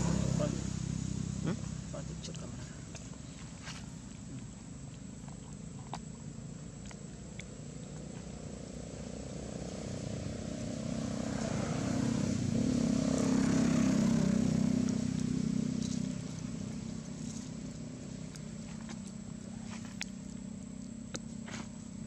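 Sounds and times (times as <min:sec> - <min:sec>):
vehicle engine passing by: 0:00.0 - 0:04.0, 0:07.6 - 0:20.0.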